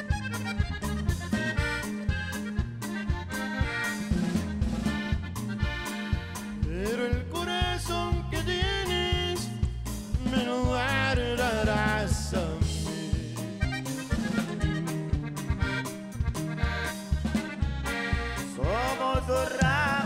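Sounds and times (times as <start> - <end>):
accordion melody: 0.0 - 20.0
drums steady beat: 0.0 - 20.0
electric bass: 0.0 - 20.0
twelve-string guitar: 0.0 - 20.0.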